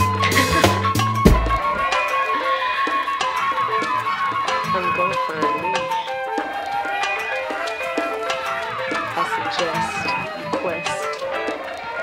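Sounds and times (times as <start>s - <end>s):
instrumental r and b music: 0.0s - 12.0s.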